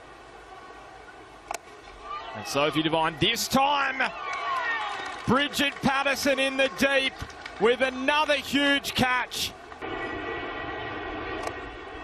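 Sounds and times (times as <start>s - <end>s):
droning hum with held tones: 9.6s - 12.0s.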